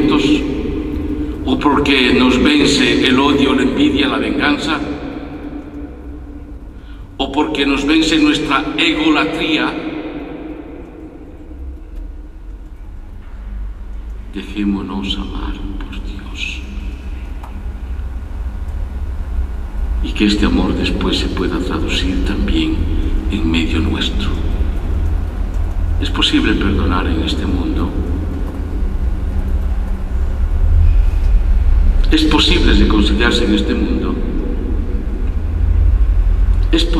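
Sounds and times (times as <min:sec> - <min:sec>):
faint steady hum: 0:00.0 - 0:36.9
low steady rumble: 0:00.0 - 0:36.9.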